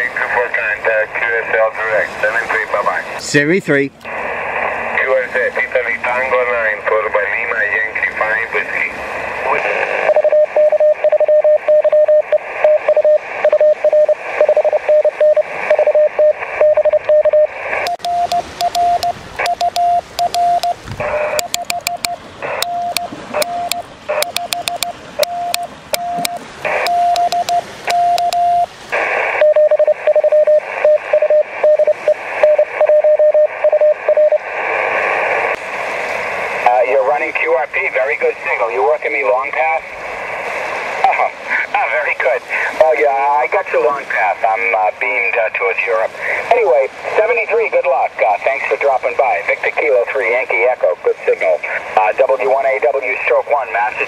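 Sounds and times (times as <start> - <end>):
hissing radio noise: 0.0 - 54.0
morse code tones: 10.0 - 34.6.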